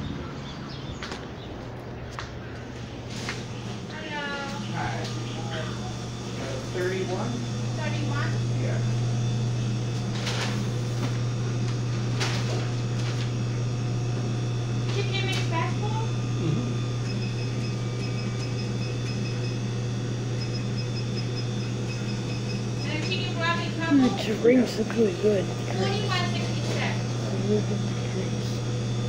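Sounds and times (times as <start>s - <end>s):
low machine hum: 0.0s - 29.0s
rapid high-pitched electronic beeping: 17.1s - 19.6s, 20.4s - 23.0s.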